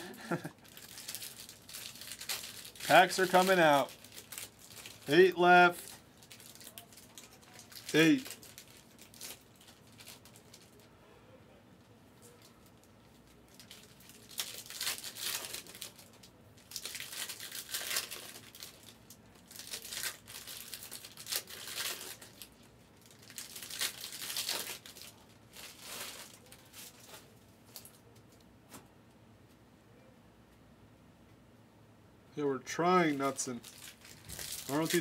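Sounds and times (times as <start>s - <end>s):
card packs crinkling: 0.1s - 10.9s, 12.2s - 28.2s, 33.0s - 35.0s.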